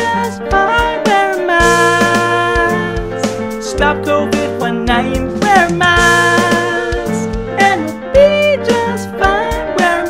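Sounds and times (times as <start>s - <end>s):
instrumental backing: 0.0s - 10.0s
man singing: 0.0s - 10.0s
drum beat: 1.6s - 8.5s.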